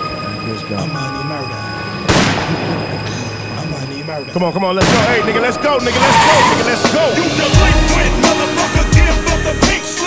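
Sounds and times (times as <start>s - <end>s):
voices in a track: 0.2s - 1.7s, 3.1s - 10.0s
gunshot: 2.1s - 3.1s, 4.8s - 5.3s
hip-hop track with bass: 4.8s - 10.0s.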